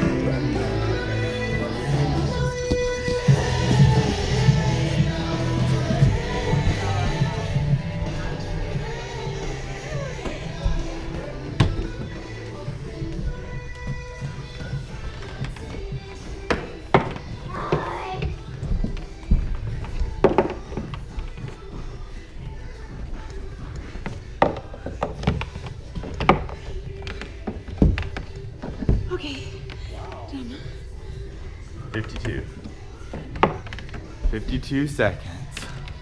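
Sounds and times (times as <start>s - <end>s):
background music: 0.0s - 36.0s.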